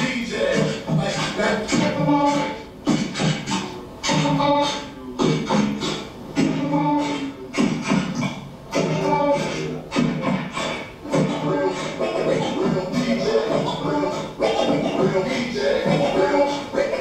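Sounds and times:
person beatboxing: 0.0s - 17.0s.

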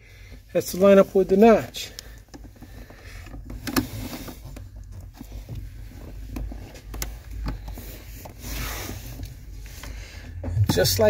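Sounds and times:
plastic parts rubbing and clicking: 0.3s - 10.6s
low steady rumble: 10.4s - 11.0s.

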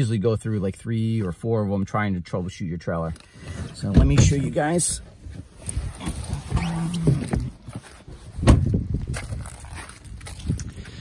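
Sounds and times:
rustling and handling noise: 3.0s - 11.0s
heavy thump: 8.4s - 8.8s.

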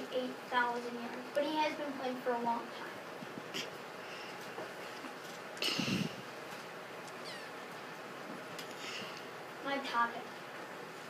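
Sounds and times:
room noise: 0.0s - 11.0s
faint high-pitched squeak: 7.2s - 7.5s.

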